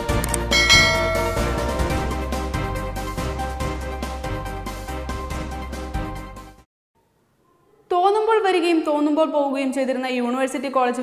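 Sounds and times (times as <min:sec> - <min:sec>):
background music: 0:00.0 - 0:06.6
bright bell chime: 0:00.4 - 0:02.4.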